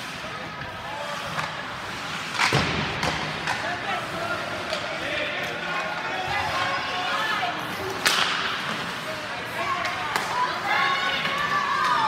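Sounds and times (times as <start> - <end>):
hockey puck struck: 2.3 - 3.6.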